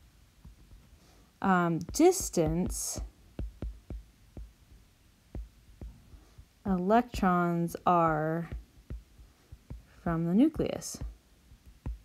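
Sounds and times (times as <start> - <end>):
stylus tapping on glass screen: 1.8 - 6.5, 8.0 - 12.0.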